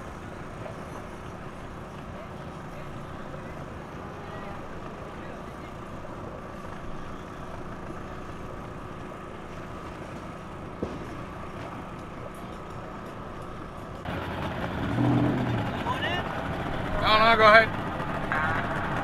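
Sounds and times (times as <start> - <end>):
loud engine: 0.0 - 19.0
outboard motor idling: 0.0 - 19.0.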